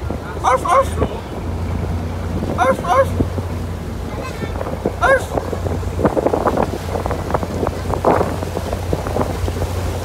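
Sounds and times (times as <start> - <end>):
small boat motor running: 0.0 - 10.0
water rushing past hull: 0.0 - 10.0
wind buffeting microphone: 0.0 - 10.0.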